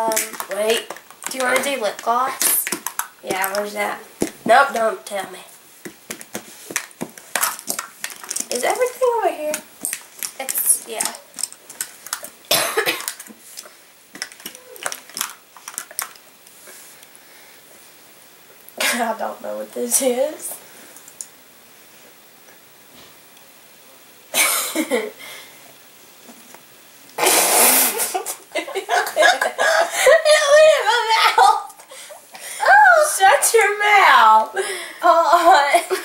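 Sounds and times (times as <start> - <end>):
makeup containers clicking: 0.1 - 4.9, 5.9 - 8.6, 14.2 - 16.2
person coughing: 12.5 - 13.1
breath sputtered through lips: 27.2 - 28.2
person laughing: 27.8 - 32.3.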